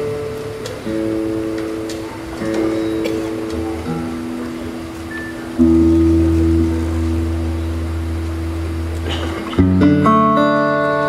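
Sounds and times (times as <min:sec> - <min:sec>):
blues band playing: 0:00.0 - 0:11.0.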